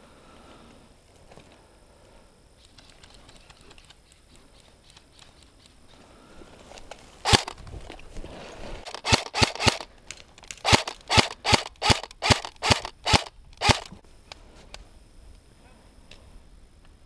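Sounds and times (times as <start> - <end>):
airsoft gun shots: 7.3 - 7.6, 8.8 - 9.8, 10.6 - 13.9.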